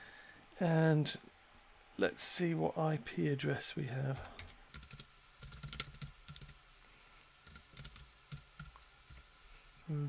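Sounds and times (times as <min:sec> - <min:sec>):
keyboard typing: 0:04.2 - 0:06.6, 0:07.4 - 0:09.2.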